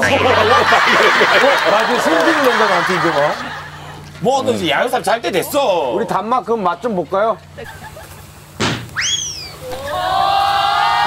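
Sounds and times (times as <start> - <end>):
whistle sweeping up and down: 9.0 - 9.9.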